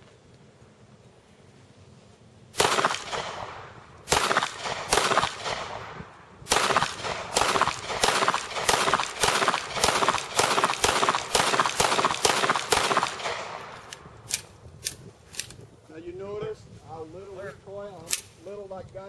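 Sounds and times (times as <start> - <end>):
pistol shots with echo: 2.6 - 14.0.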